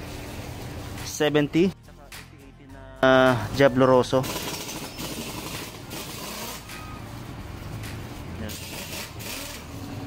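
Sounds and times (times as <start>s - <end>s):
vehicle noise: 0.0s - 10.0s.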